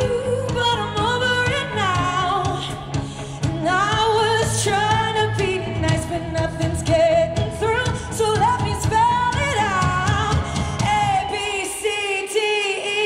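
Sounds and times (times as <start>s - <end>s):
pop-rock band playing: 0.0s - 13.0s
woman singing into a microphone: 0.0s - 13.0s.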